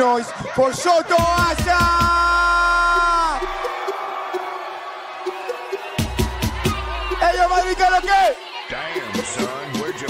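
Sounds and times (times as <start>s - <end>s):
man shouting over loudspeaker: 0.0s - 3.6s, 6.8s - 10.0s
crowd cheering: 0.0s - 10.0s.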